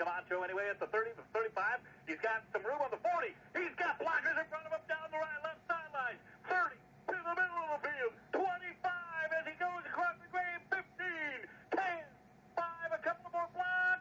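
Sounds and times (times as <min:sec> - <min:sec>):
radio sports announcer commentating: 0:00.0 - 0:14.0.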